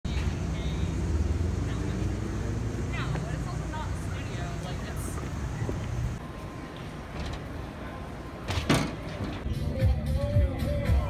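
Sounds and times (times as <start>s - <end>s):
low rumble of traffic: 0.0s - 11.0s
faint voices of pedestrians: 0.1s - 11.0s.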